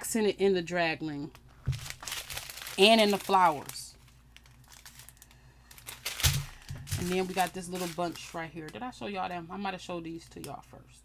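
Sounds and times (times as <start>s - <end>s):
plastic bags crinkling: 1.3s - 9.4s.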